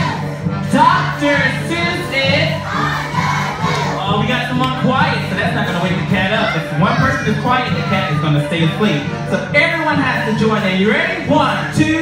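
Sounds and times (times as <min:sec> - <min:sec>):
young children shouting: 0:02.6 - 0:04.1, 0:06.1 - 0:09.0.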